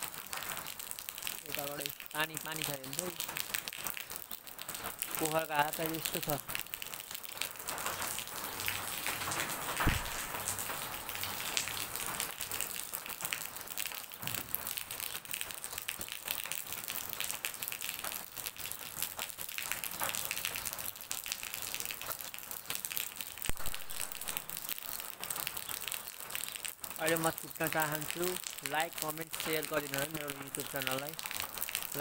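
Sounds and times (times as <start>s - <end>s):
steady rain falling: 0.0s - 32.0s
brief knocks: 9.8s - 10.4s.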